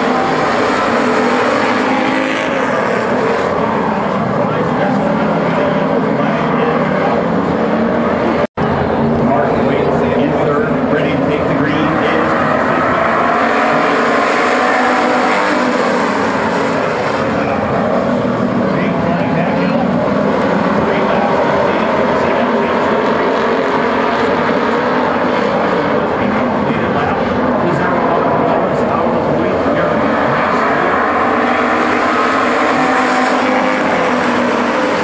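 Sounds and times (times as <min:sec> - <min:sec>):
race car engines at high revs: 0:00.0 - 0:35.0.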